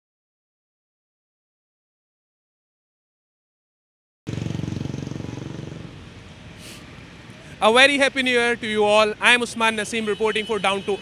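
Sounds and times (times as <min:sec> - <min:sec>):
vehicle engine passing: 0:04.3 - 0:07.6
traffic hiss: 0:04.3 - 0:11.0.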